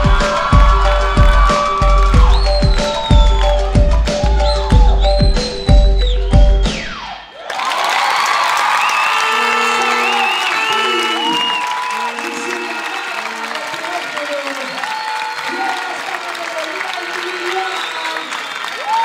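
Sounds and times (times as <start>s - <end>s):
music: 0.0s - 7.2s, 9.4s - 13.4s
audience applauding and cheering: 0.0s - 19.0s
high whistles: 1.1s - 7.5s, 8.7s - 13.3s.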